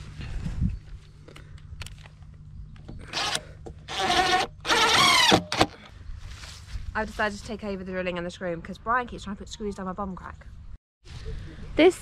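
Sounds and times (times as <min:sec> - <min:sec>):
cordless drill driving screws: 0:03.1 - 0:05.8.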